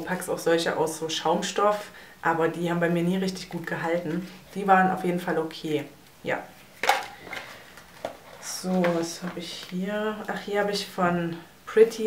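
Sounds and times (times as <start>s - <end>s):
faint handling noise: 6.6s - 9.8s.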